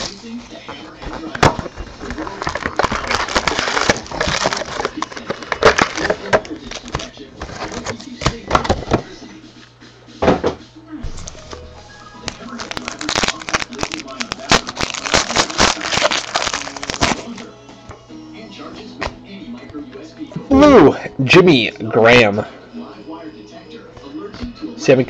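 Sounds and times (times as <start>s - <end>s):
foil wrappers tearing and crinkling: 0.0s - 0.4s, 1.0s - 8.8s, 12.2s - 17.5s.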